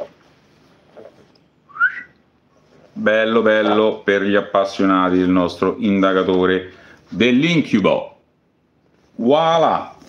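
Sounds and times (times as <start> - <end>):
short rising whistle: 1.7 - 2.2.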